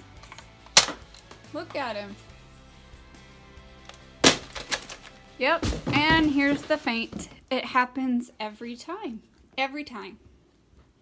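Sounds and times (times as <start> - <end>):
faint background music: 0.0 - 10.5.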